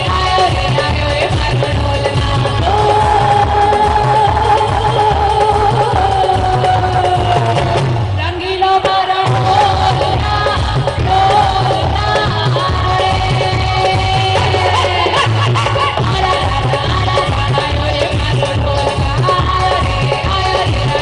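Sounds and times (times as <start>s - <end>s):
woman singing into microphone: 0.0s - 21.0s.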